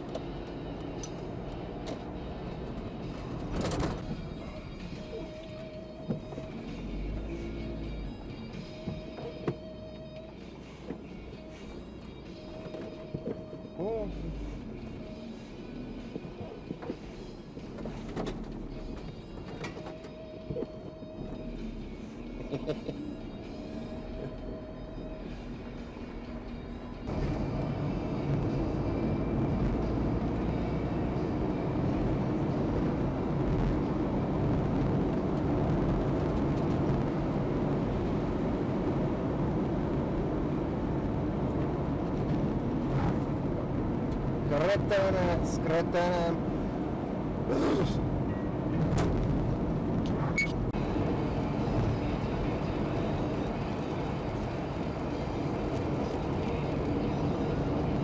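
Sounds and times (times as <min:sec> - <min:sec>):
engine and tyres rumbling: 0:00.0 - 0:58.0.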